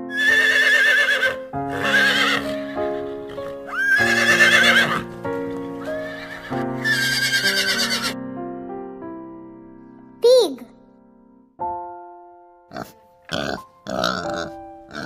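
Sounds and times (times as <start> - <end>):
horse whinnying: 0.0 - 8.2
background music: 0.0 - 15.0.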